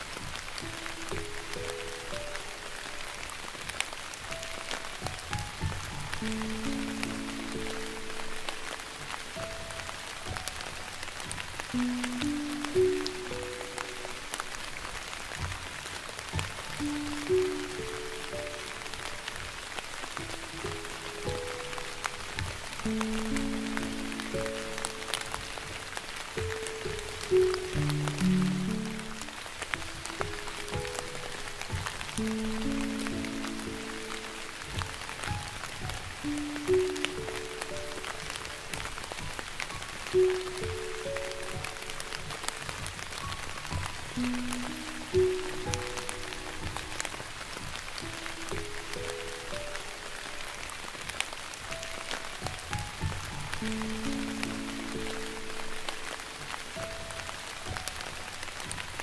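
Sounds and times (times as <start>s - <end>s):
light rain: 0.0s - 59.0s
raindrop ticks: 0.0s - 59.0s
slow gentle piano melody: 0.0s - 59.0s.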